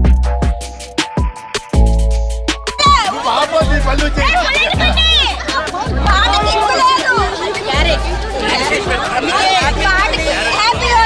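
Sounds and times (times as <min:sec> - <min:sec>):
crowd chattering and calling out: 0:00.0 - 0:11.0
loud dance music with bass: 0:00.0 - 0:11.0.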